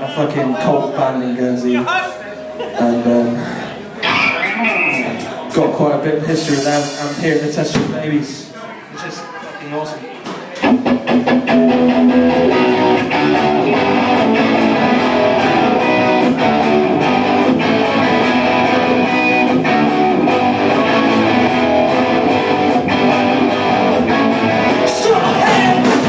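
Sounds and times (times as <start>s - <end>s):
hard rock band playing: 4.0s - 5.6s, 10.6s - 26.0s.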